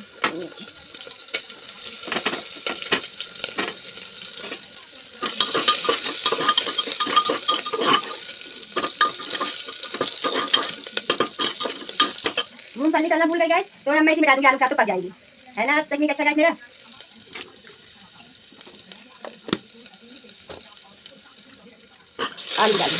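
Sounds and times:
food sizzling in oil: 0.0s - 22.9s
metal ladle scraping a pot: 5.2s - 12.5s.

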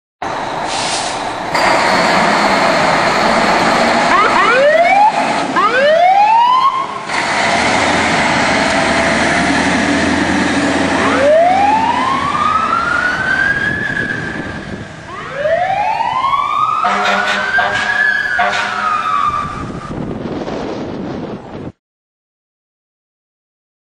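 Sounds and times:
truck engine and road noise: 0.2s - 21.8s
fire engine siren wailing: 1.5s - 21.1s.

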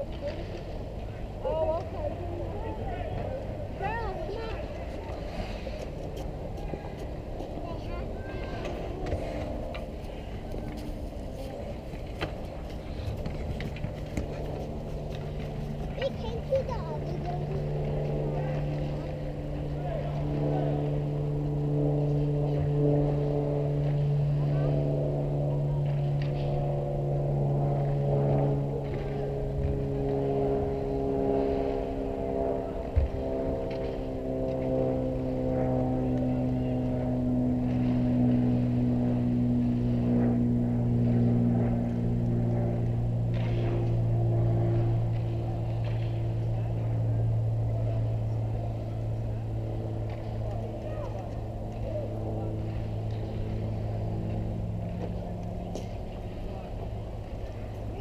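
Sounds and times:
faint voices: 0.0s - 58.0s
steady engine hum: 0.0s - 58.0s.

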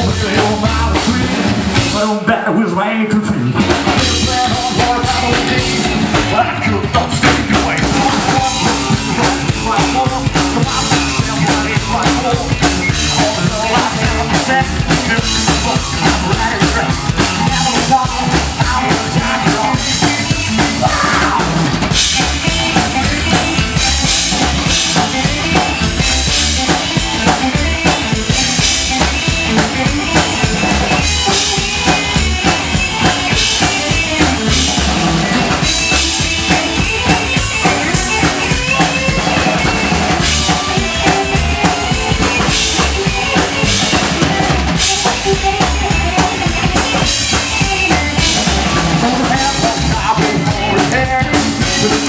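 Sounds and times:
drum kit beat: 0.0s - 2.3s, 3.5s - 52.0s
electric guitar: 0.0s - 52.0s
rock band playing: 0.0s - 52.0s.

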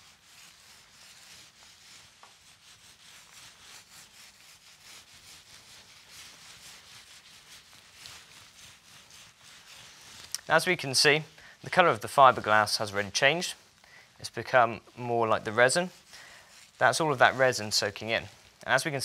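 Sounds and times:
roller rubbing over resin mat: 0.0s - 19.0s.

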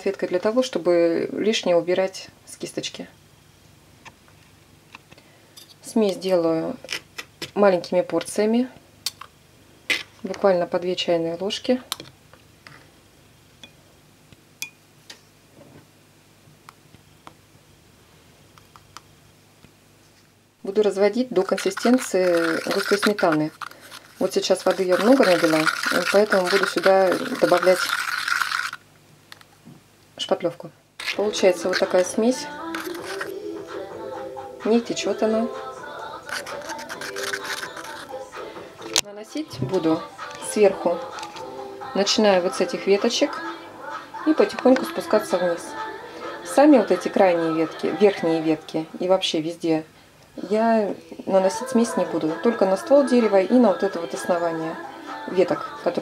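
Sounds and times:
stick scraping paste in a cup: 21.4s - 28.8s, 31.0s - 33.4s, 36.2s - 38.2s
background music: 31.2s - 49.1s, 51.4s - 56.0s
teaspoon tapping plastic cup: 36.3s - 38.1s.

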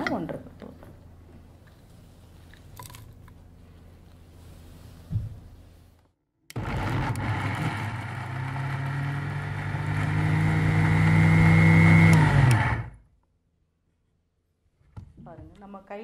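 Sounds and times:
electric mixer grinder running: 6.5s - 13.0s.

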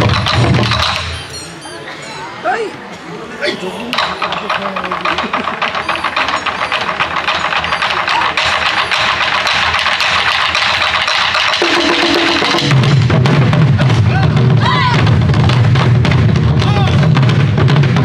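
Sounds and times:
barrel drums rolling: 0.0s - 1.6s, 3.9s - 18.0s.

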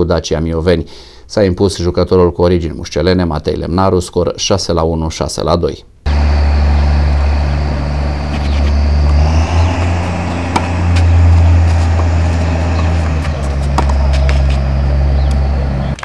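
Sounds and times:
loud low rumble: 6.1s - 16.0s
tennis balls struck with rackets: 10.1s - 14.7s.

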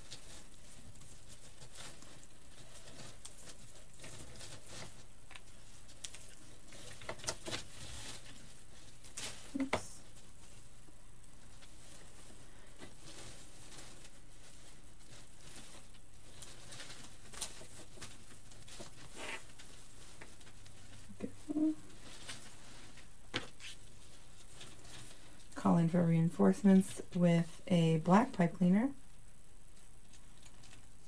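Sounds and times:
stems and ribbon rustling: 0.0s - 31.0s.

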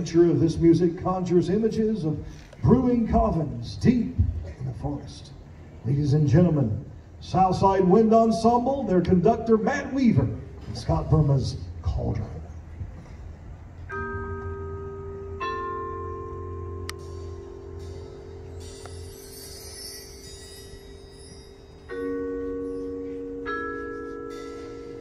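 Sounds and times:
mallet percussion chords: 13.8s - 25.0s
low sustained drone: 14.2s - 25.0s
high shimmering wash: 16.9s - 23.5s.

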